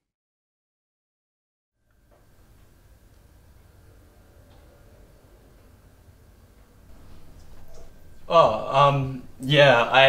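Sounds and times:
steady low hum with hiss: 1.8s - 10.0s.

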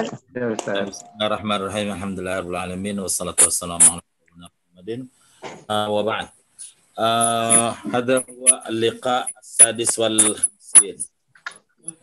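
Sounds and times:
man reciting over a video call: 0.0s - 4.0s, 4.8s - 6.3s, 7.0s - 11.0s.

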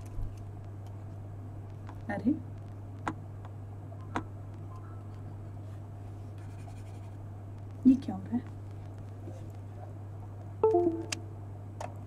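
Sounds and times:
faint ticks and scratches: 0.0s - 10.6s
low hum: 0.0s - 11.8s.

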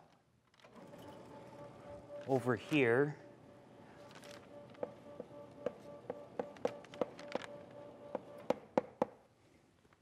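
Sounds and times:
faint steady hum: 0.7s - 10.0s
chalk tapping on blackboard: 4.8s - 7.2s, 8.1s - 9.2s.

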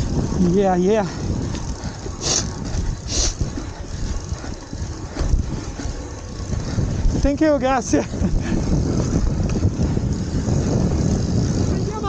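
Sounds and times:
bike rattling over rough trail: 0.0s - 12.0s
short hissing scrapes: 2.1s - 3.4s.

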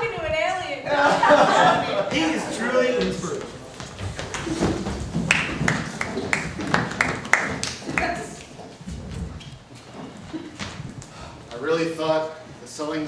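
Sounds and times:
footsteps on stage floor: 2.8s - 11.6s.

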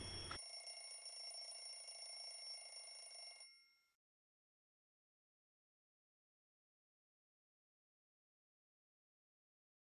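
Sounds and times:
alarm clock bells ringing: 0.0s - 4.0s.

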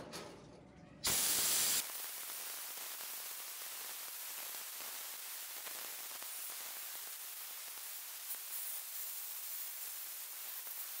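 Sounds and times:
hose spray hissing onto metal: 1.1s - 11.0s.

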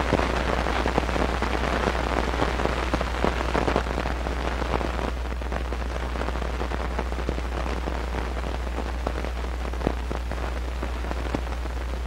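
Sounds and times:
film soundtrack crackle and hiss: 0.0s - 12.0s.

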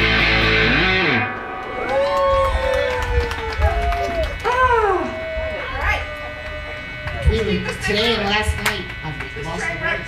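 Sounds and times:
rock band playing loudly: 0.0s - 2.6s
low bass rumble: 0.0s - 10.0s.

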